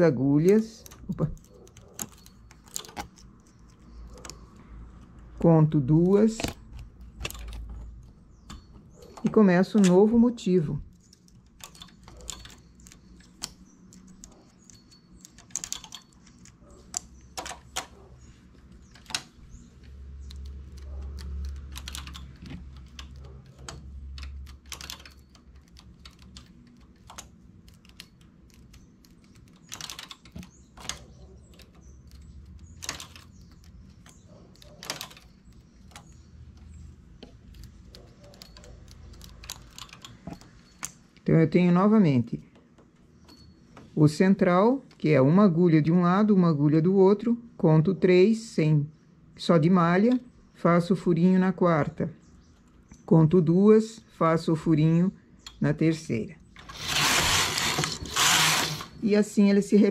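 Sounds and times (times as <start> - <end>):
knitting machine clicks and taps: 0.4 - 10.2, 10.8 - 41.1.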